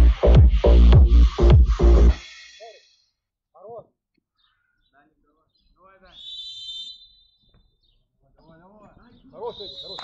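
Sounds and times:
referee's whistle blast: 9.5s - 10.0s.

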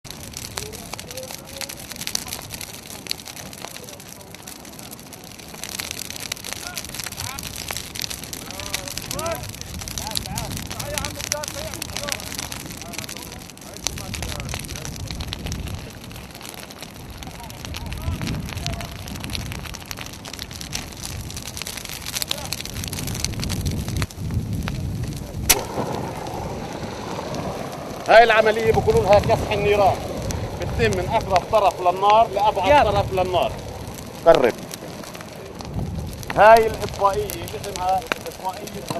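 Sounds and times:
fire crackling: 0.0s - 38.9s
faint voices: 0.4s - 16.4s, 28.0s - 38.9s.

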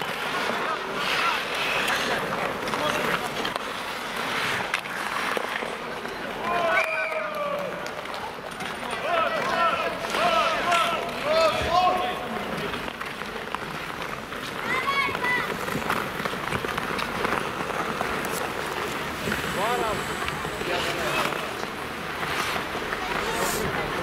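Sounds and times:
skates scraping on ice: 0.0s - 24.0s
players shouting: 8.9s - 12.3s.

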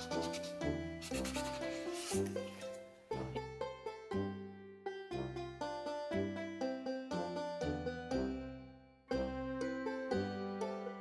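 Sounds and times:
cloth rag rubbing wood: 0.0s - 2.8s
plucked-string background music: 0.0s - 11.0s.

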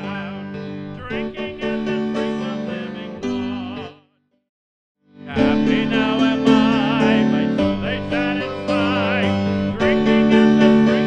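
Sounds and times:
hymn singing: 0.0s - 4.1s, 5.2s - 11.0s.

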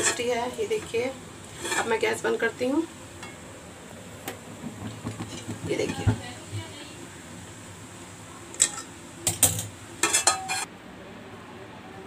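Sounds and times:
pot and utensils knocking: 4.6s - 6.6s, 8.6s - 10.7s.

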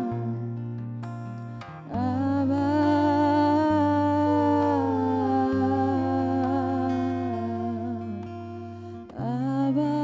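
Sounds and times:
voices singing in harmony: 0.0s - 0.7s, 1.9s - 10.0s.

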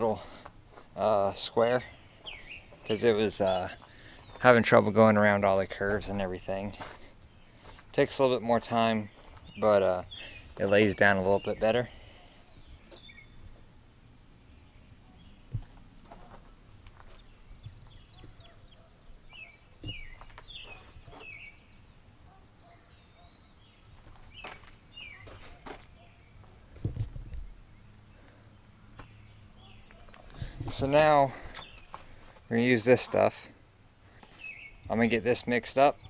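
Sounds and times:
birds chirping: 0.0s - 36.0s.

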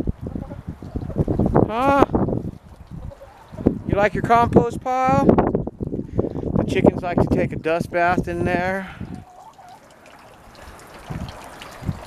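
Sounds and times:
fountain water trickling: 5.4s - 6.6s, 7.2s - 12.0s.

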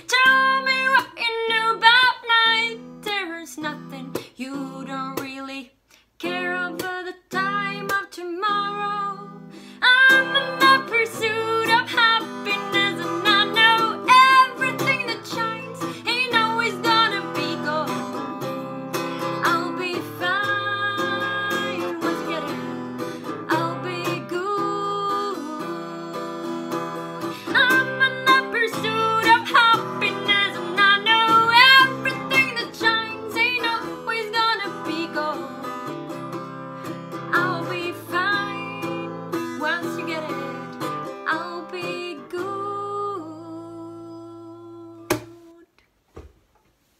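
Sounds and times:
woman singing: 0.0s - 45.8s
strummed acoustic guitar: 6.2s - 43.3s.

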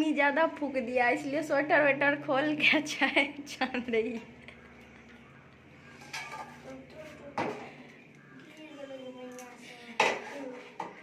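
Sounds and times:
metal cups and pan clinking: 5.9s - 6.8s, 9.9s - 11.0s.

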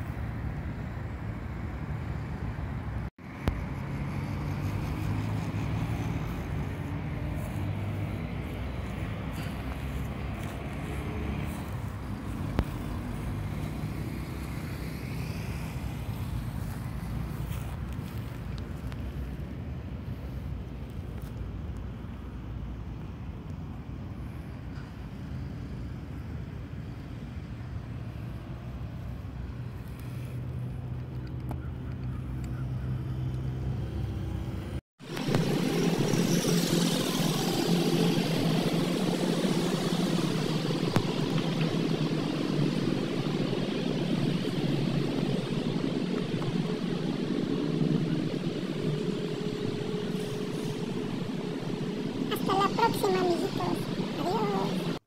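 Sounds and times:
road traffic rumble: 0.0s - 55.0s.

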